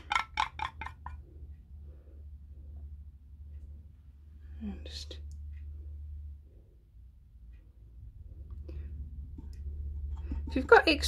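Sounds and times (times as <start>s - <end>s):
stick scraping paint cup: 0.0s - 1.2s, 9.3s - 11.0s
faint low hum: 0.0s - 11.0s.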